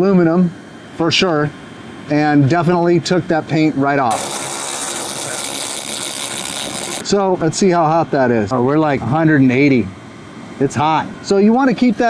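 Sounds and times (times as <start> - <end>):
laser cleaner hissing: 4.1 - 7.1.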